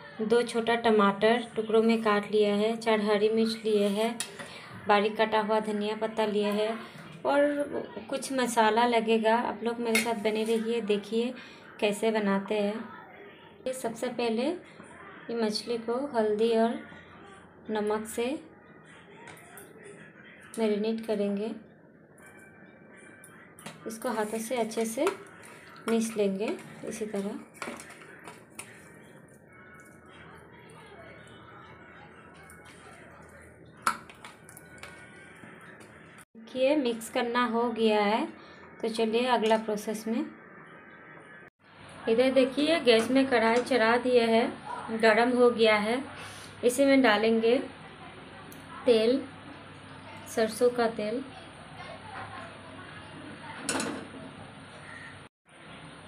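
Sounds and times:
wet squishing of hand rubbing fish: 0:24.0 - 0:30.2.

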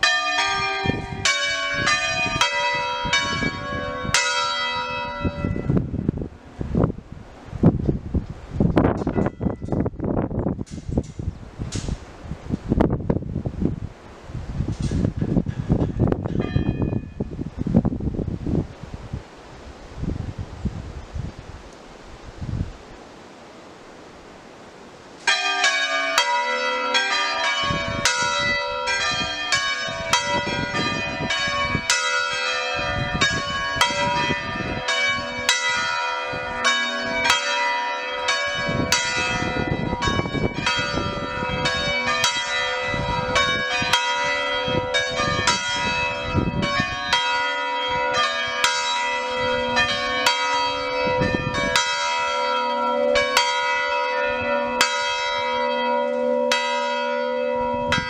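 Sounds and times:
church bells ringing a peal: 0:00.0 - 0:06.2, 0:09.0 - 0:10.5, 0:15.2 - 0:17.4, 0:25.2 - 0:58.0.

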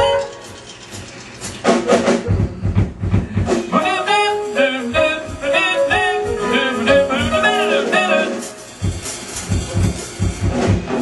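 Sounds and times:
live jazz band playing: 0:00.0 - 0:02.3, 0:03.4 - 0:11.0.

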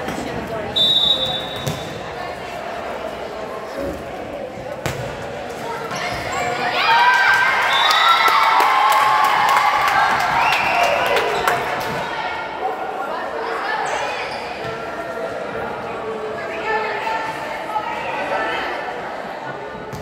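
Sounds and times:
referee whistle blast: 0:00.8 - 0:01.9
young voices shouting and cheering: 0:06.0 - 0:14.3.

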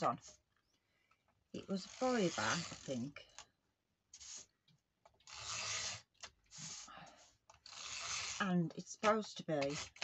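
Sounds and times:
tape runner scraping on paper: 0:01.6 - 0:03.1, 0:04.1 - 0:04.5, 0:05.2 - 0:06.9, 0:07.5 - 0:10.0.

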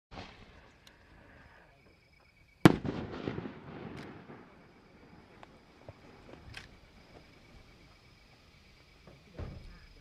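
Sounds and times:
firework shell bursting: 0:02.6 - 0:05.0.

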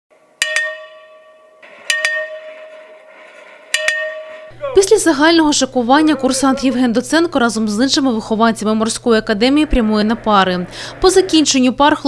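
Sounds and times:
ship's bell ringing: 0:00.2 - 0:07.6.

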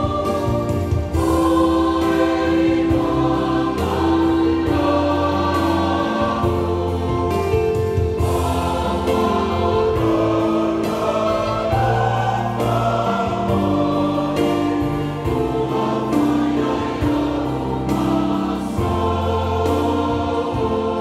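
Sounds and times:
congregation singing a hymn: 0:00.0 - 0:21.0
electronic keyboard: 0:00.0 - 0:21.0.

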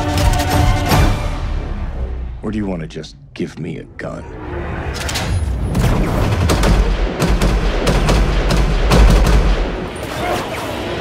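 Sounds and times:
rapid gunfire: 0:05.8 - 0:09.9.

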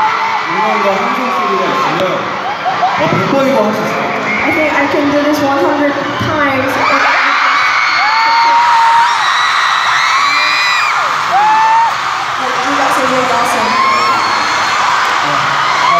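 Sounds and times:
crowd screaming and cheering: 0:00.0 - 0:15.9.

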